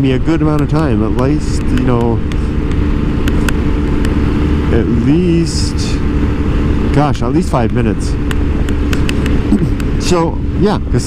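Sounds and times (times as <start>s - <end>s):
motorcycle engine drone: 0.0s - 11.0s
riding wind rush: 0.0s - 11.0s.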